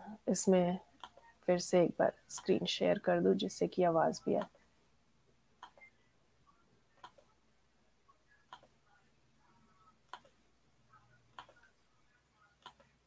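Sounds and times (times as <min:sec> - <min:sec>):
computer mouse clicks: 0:01.0 - 0:01.3, 0:05.6 - 0:05.9, 0:07.0 - 0:07.3, 0:10.1 - 0:10.4, 0:11.3 - 0:11.6, 0:12.6 - 0:12.9.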